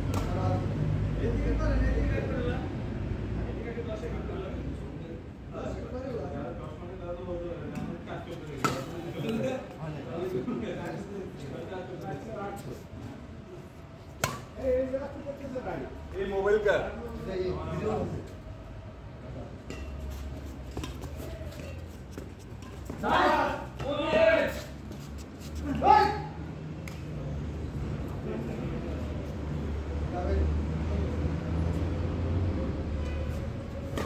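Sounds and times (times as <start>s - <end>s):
racket striking shuttlecock: 14.2s - 14.5s
rackets hitting shuttlecock: 14.2s - 14.6s, 19.6s - 24.1s, 33.8s - 34.0s.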